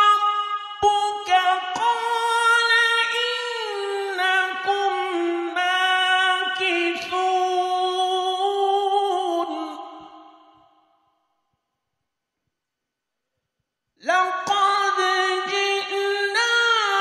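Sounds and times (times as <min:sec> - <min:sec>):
person chanting: 0:00.0 - 0:10.6, 0:14.0 - 0:17.0.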